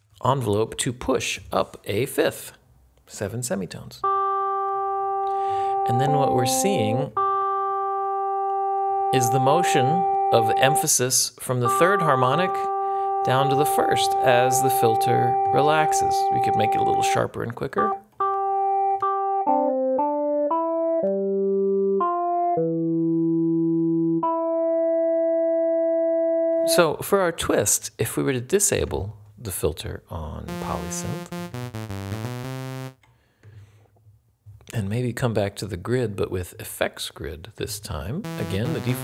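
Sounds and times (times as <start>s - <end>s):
synthesizer notes: 5.7s - 7.4s, 11.6s - 17.1s, 30.5s - 33.0s, 38.2s - 39.0s.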